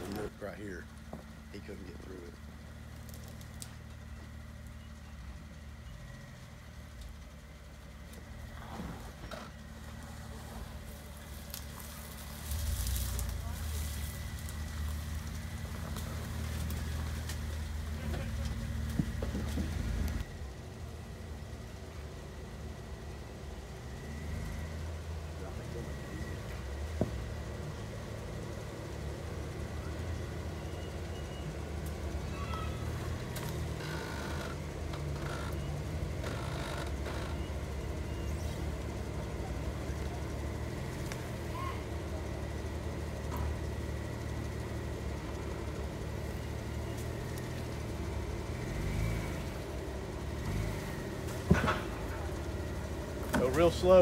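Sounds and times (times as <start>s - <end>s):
off-road vehicle engine rumbling: 0.0s - 54.0s.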